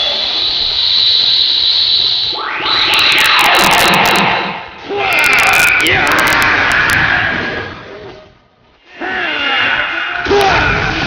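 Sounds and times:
hissing whoosh with ringing tone: 0.0 - 5.8
sweeping whoosh: 0.1 - 6.0
sharp crackling clicks: 5.1 - 7.1.

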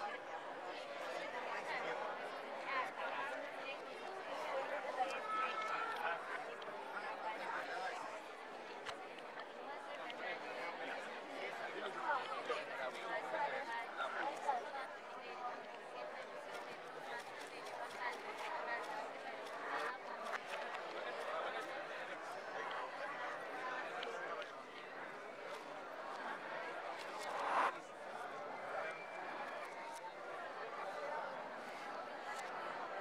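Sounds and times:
crowd chatter: 0.0 - 33.0.

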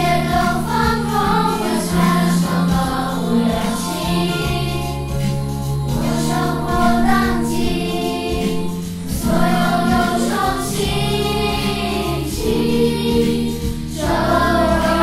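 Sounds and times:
children singing in unison: 0.0 - 15.0
instrumental backing track: 0.0 - 15.0.

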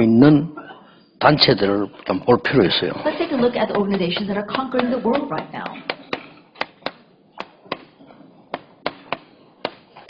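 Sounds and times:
chalk tapping on chalkboard: 3.7 - 10.0.

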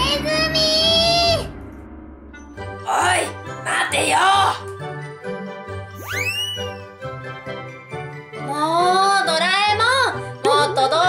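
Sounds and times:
background music: 0.0 - 11.0
high-pitched cartoon shriek: 6.0 - 6.9.

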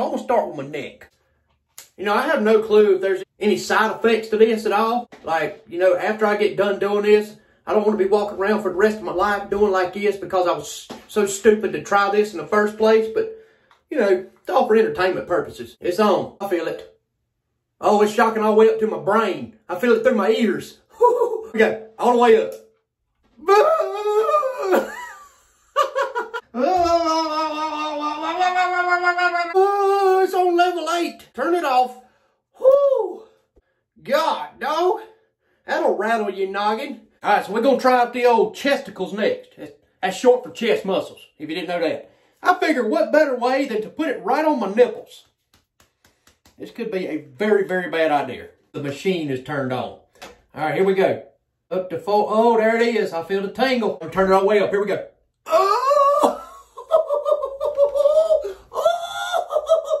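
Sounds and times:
man's high-pitched cry: 20.9 - 21.6, 23.4 - 25.2, 25.9 - 30.4, 32.6 - 33.3, 55.5 - 60.0.

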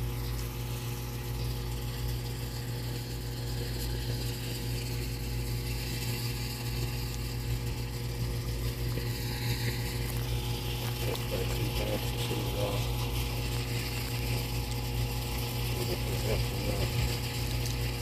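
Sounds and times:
machine humming: 0.0 - 18.0.

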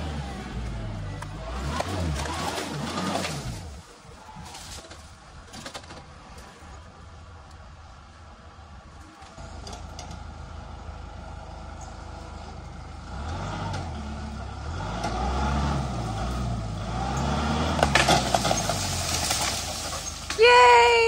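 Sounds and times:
tractor diesel engine revving: 0.0 - 4.0, 9.3 - 20.4
crackling and snapping: 17.7 - 20.4.

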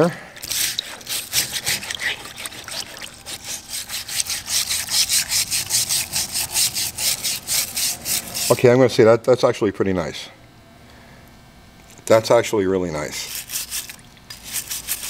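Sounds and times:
brush scrubbing metal in liquid: 0.4 - 8.6, 13.2 - 15.0.

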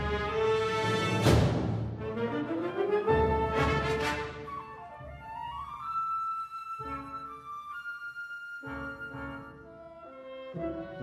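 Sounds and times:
wind ensemble playing: 0.0 - 11.0.

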